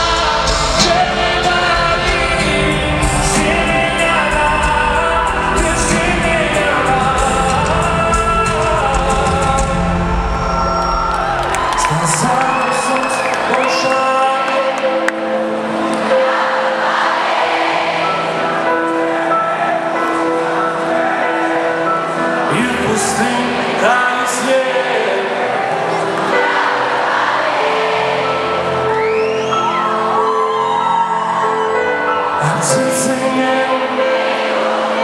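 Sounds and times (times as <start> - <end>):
crowd singing along: 0.0 - 35.0
live pop song: 0.0 - 35.0
crowd whooping: 9.8 - 15.1, 27.7 - 32.5.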